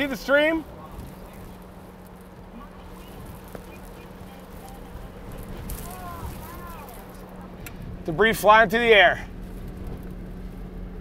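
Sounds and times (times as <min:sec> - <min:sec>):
constant low hum: 0:00.0 - 0:11.0
storm wind rumbling: 0:00.6 - 0:08.1.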